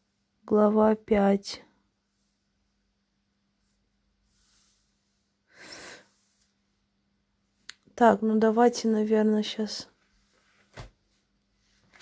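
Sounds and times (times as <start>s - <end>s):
woman breathing faintly: 4.2s - 6.6s.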